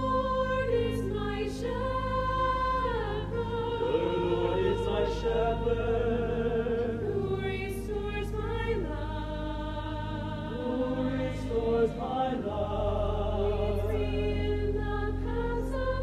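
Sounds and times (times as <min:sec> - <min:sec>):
low steady bass notes: 0:00.0 - 0:16.0
mixed choir singing: 0:00.0 - 0:16.0.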